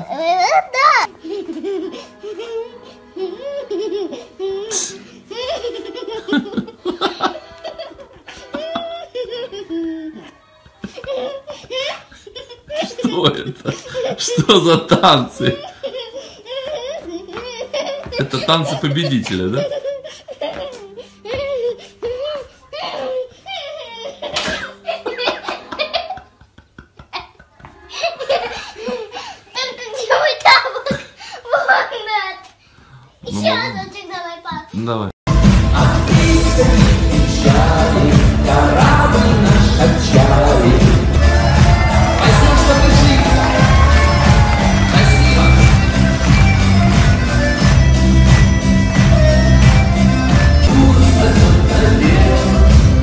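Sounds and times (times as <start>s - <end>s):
girl giggling and laughing: 0.0s - 32.6s.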